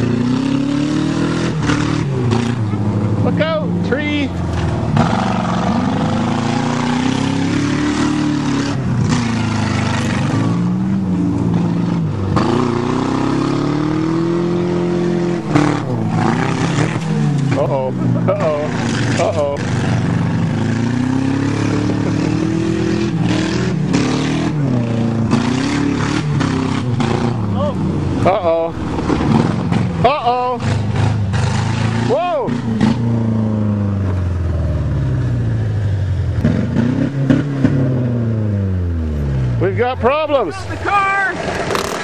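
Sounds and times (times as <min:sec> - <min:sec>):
car engines revving: 0:00.0 - 0:42.0.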